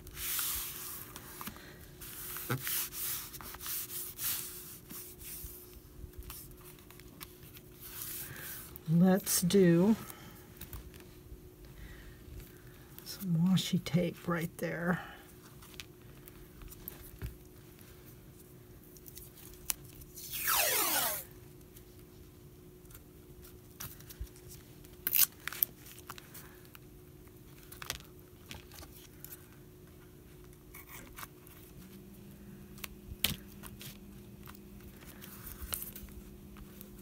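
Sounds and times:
tape ripping off roll: 20.1s - 21.4s
tape clicks and rustles: 22.8s - 29.5s.

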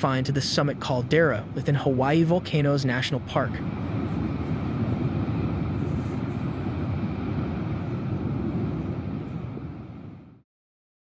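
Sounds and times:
lava fountain roaring: 0.0s - 10.4s.

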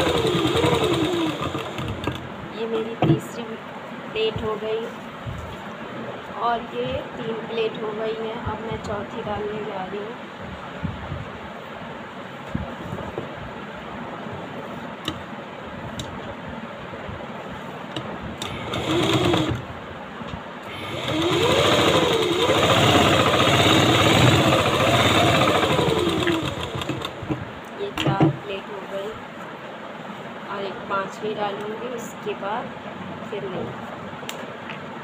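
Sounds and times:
sewing machine stitching: 0.0s - 2.3s, 18.4s - 19.7s, 20.7s - 27.3s.

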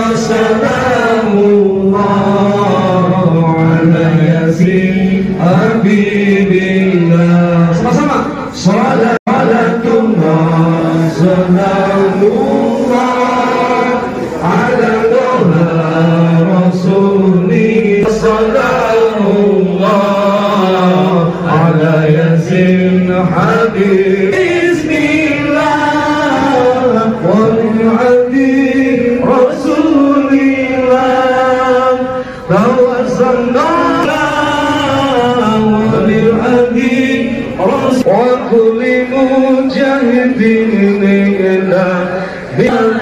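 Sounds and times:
voices chanting a religious song: 0.0s - 43.0s.

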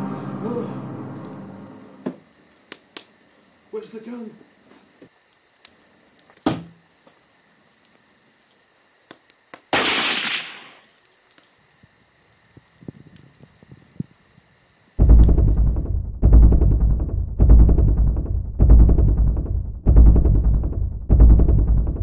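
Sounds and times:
deep pulsing music: 15.0s - 22.0s.

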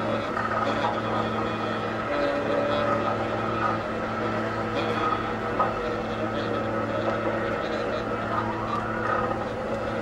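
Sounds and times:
cello: 0.0s - 10.0s
electronic drone of held tones: 0.0s - 10.0s
saxophone: 0.0s - 10.0s.

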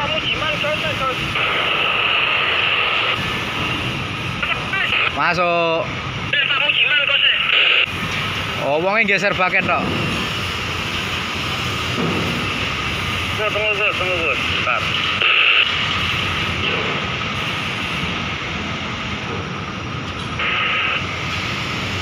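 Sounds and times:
hissy bursts: 0.0s - 5.4s, 6.3s - 19.2s, 20.3s - 22.0s
construction site noise: 0.0s - 22.0s.

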